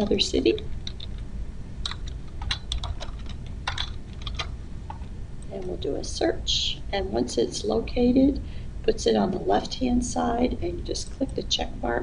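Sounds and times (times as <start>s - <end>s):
typing on keyboard: 1.8s - 4.6s.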